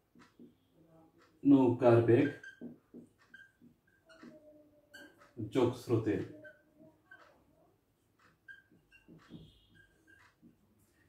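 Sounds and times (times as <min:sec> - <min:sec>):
whiteboard marker squeaking: 0:02.1 - 0:05.4, 0:06.1 - 0:07.6, 0:08.2 - 0:11.0.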